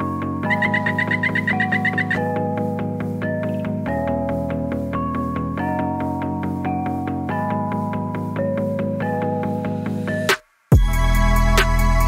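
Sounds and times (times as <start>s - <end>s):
run of repeated high notes: 0.0s - 12.0s
synth chords over steady beat: 0.0s - 12.0s.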